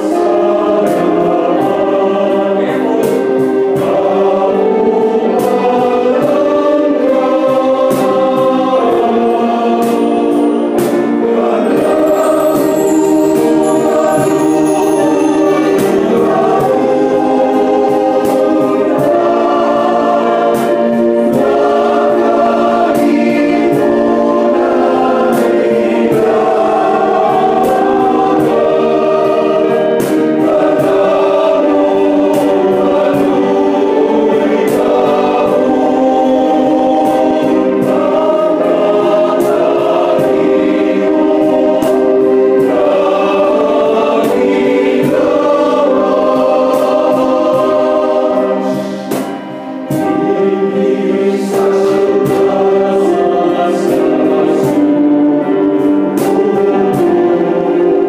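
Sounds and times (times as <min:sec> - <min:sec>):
men's choir singing a hymn: 0:00.0 - 0:58.0.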